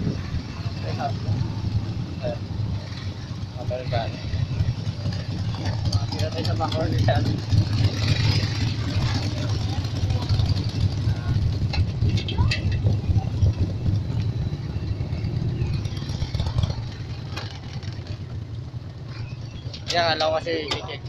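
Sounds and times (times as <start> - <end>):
faint voices: 0.0 - 15.8
motorcycle engine running: 0.0 - 21.0.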